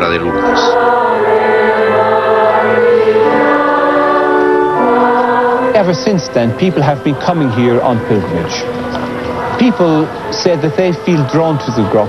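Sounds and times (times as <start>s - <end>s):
choir singing sacred music: 0.0s - 12.0s.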